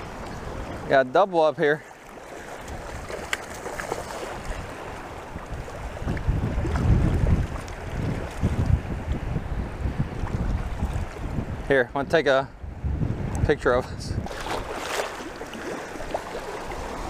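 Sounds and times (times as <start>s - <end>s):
wind buffeting microphone: 0.0s - 1.0s, 2.5s - 17.0s
choppy water: 0.0s - 17.0s.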